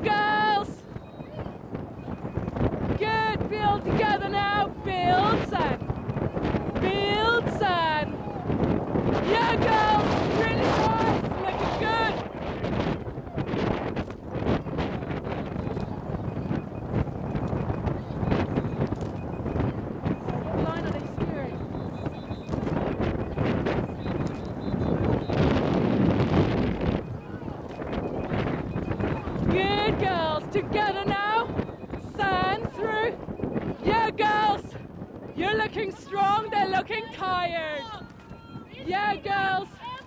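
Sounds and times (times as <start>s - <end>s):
wind buffeting microphone: 0.0s - 40.0s
people shouting: 6.6s - 12.3s, 35.8s - 40.0s.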